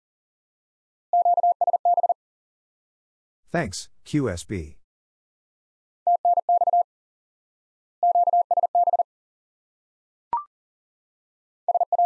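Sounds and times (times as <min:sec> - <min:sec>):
morse code beeps: 0:01.2 - 0:02.2, 0:06.1 - 0:06.8, 0:08.0 - 0:09.0, 0:11.7 - 0:12.0
person speaking: 0:03.5 - 0:04.8.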